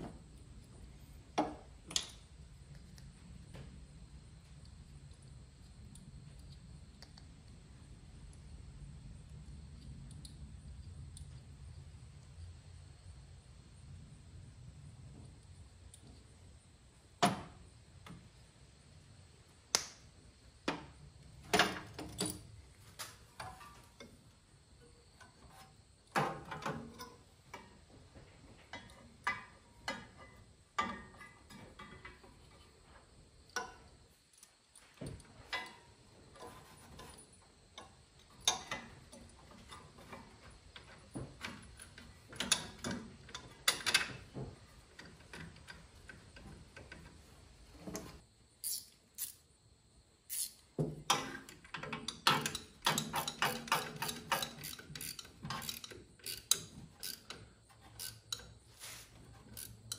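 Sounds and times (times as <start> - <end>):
metal tools clicking and clattering: 51.1 - 58.6.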